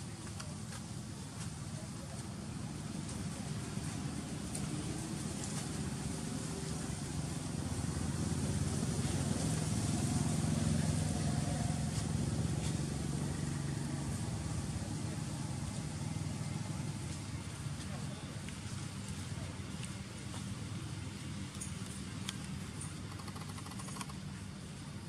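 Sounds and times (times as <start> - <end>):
vehicle engine rumbling: 0.0 - 25.0.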